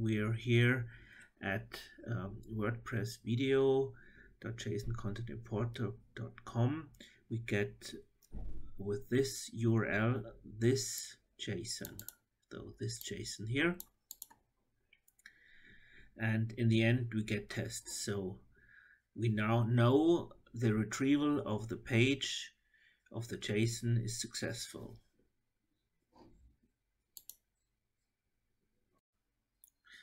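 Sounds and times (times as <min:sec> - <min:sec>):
computer mouse clicks: 0:11.8 - 0:12.2, 0:13.8 - 0:14.4, 0:27.2 - 0:27.4.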